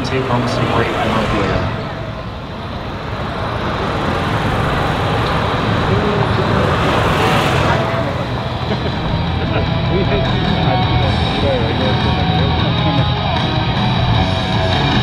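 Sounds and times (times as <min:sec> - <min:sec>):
jet engine roar: 0:00.0 - 0:15.0.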